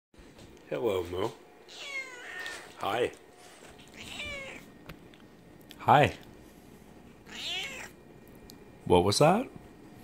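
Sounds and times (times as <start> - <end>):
cat meowing: 1.7 - 2.7, 3.9 - 4.7, 7.2 - 8.0.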